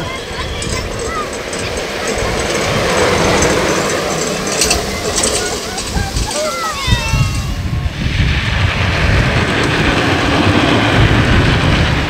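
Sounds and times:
wheels rushing on asphalt: 0.0 - 12.0
light rattling clicks: 0.1 - 6.8.

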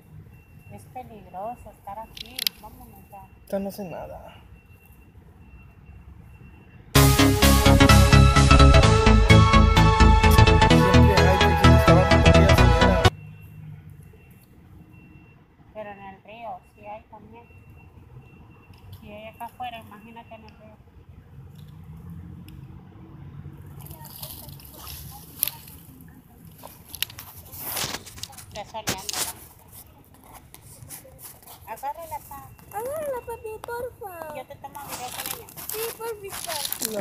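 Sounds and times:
rustling and scraping: 23.8 - 33.1, 34.2 - 37.0.

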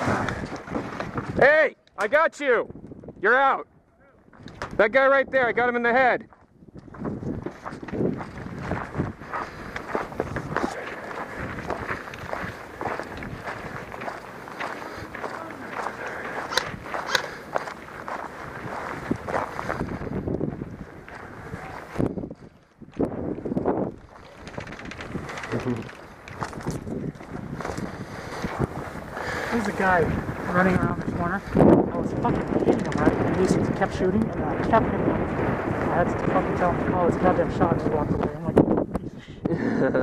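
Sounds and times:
footsteps on dirt and grass: 6.3 - 33.6.

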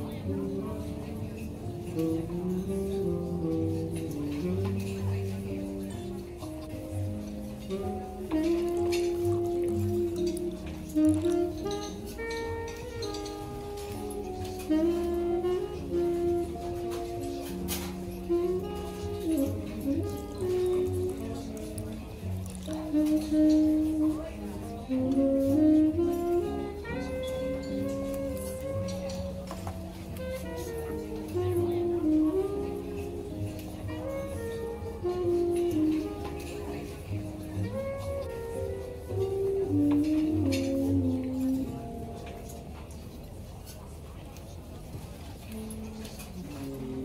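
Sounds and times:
jazz saxophone melody: 0.0 - 47.0
soft low backing music: 0.0 - 47.0.

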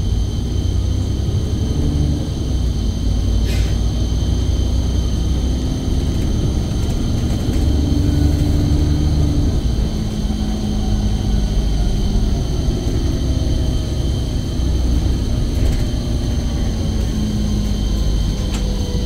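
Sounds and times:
bus engine rumble: 0.0 - 19.0
steady high whine: 0.0 - 19.0.

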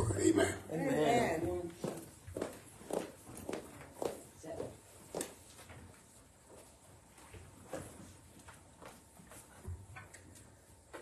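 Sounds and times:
footsteps walking: 1.4 - 9.9.

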